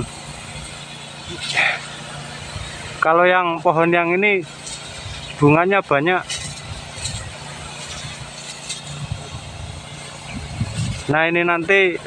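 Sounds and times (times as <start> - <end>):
spray lance hissing: 0.0 - 12.0
spray pump motor hum: 0.0 - 12.0.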